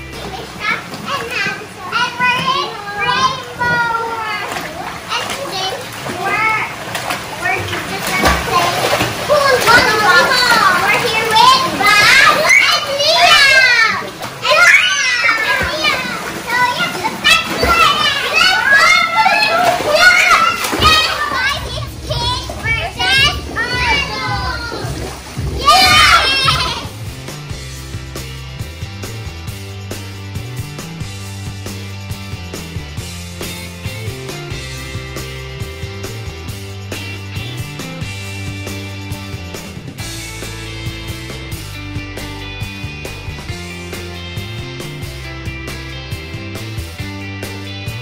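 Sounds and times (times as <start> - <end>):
water splashing: 0.0 - 27.6
faint background music: 0.0 - 48.0
children shouting and shrieking: 0.2 - 6.8, 7.4 - 27.0.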